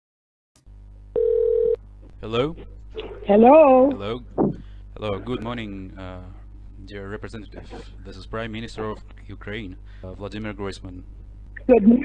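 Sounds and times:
low steady line hum: 0.6s - 12.0s
steady telephone tone: 1.2s - 1.8s.

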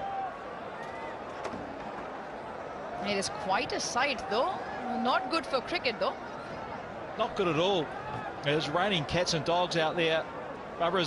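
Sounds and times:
faint crowd voices: 0.0s - 11.0s.

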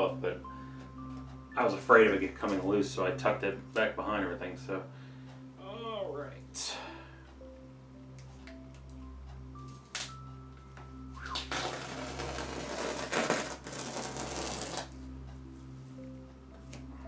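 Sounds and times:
soft music with mallet notes: 0.0s - 17.0s
masking tape ripping off canvas: 11.3s - 15.0s.

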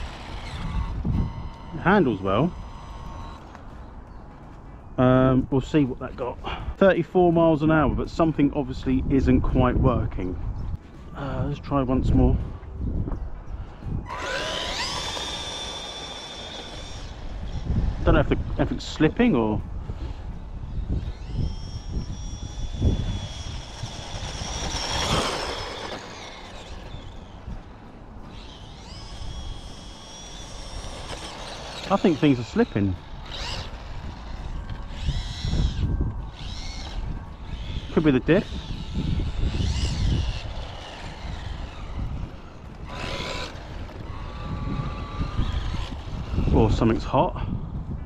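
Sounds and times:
rc car electric motor whining: 0.0s - 4.2s, 13.6s - 47.2s.

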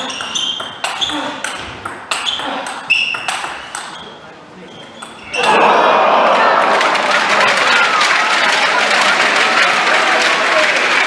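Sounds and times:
table tennis ball clicking: 0.0s - 4.0s
crowd applause: 5.4s - 11.0s.

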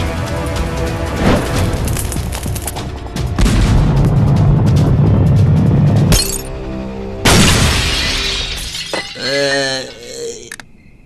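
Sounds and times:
music: 0.0s - 10.1s
low rumbling crash: 3.3s - 6.2s
glass shattering: 6.1s - 6.5s, 7.3s - 9.7s.

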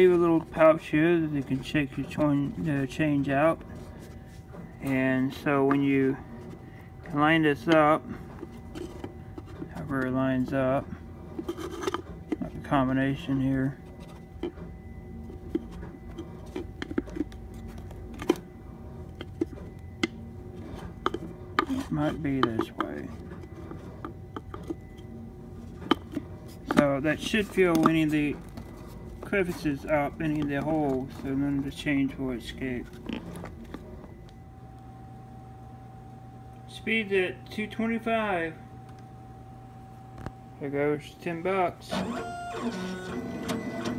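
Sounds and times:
laser engraver humming: 0.0s - 43.9s.

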